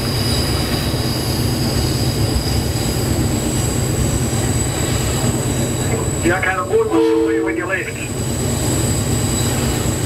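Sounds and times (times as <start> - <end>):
diesel locomotive rumble: 0.0 - 10.0
rail running noise: 0.0 - 10.0.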